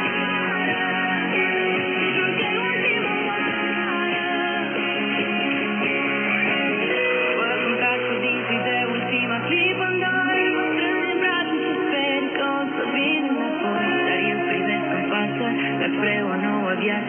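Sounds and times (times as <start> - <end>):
guitar music from radio speaker: 0.0 - 17.0.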